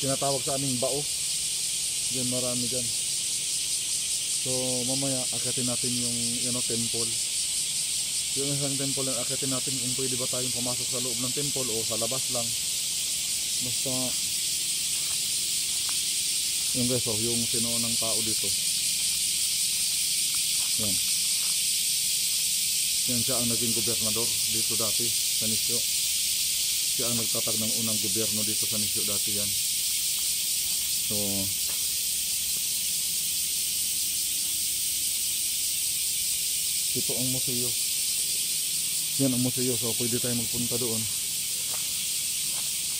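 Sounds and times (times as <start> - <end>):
cicada chorus: 0.0 - 42.9
high-pitched hiss: 0.0 - 42.9.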